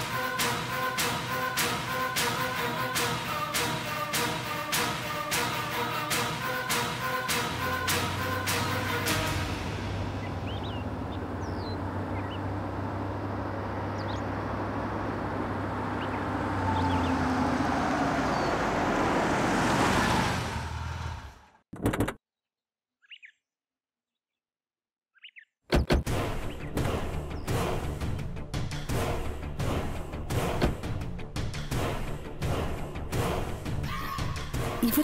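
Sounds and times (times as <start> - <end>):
car engine humming: 0.0 - 21.5
small birds chirping: 10.1 - 12.6, 13.7 - 14.5, 15.8 - 17.4, 18.2 - 18.6, 23.0 - 23.5, 25.1 - 25.6.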